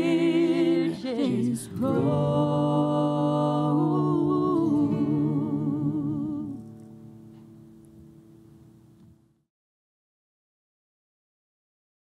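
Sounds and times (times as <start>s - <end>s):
voices singing harmony chord: 0.0s - 6.8s.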